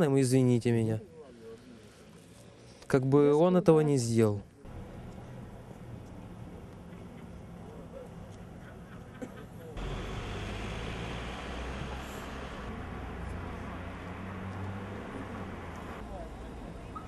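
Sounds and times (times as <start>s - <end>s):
street noise: 4.5s - 17.0s
vehicle engine rumble: 4.7s - 17.0s.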